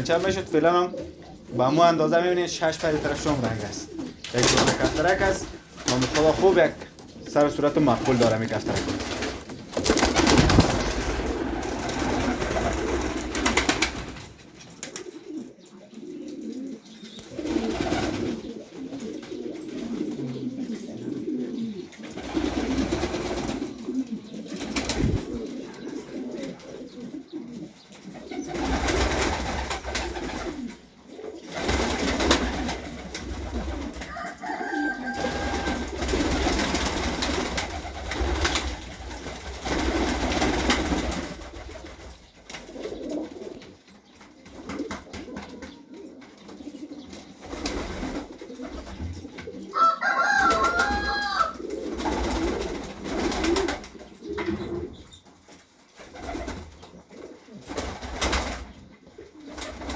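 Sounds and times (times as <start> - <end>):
pigeons cooing: 0.0 - 59.9.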